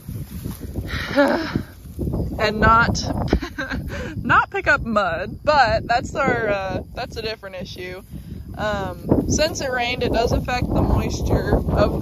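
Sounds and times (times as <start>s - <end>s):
rustle of dry straw: 0.0s - 2.4s
wind buffeting microphone: 0.0s - 12.0s.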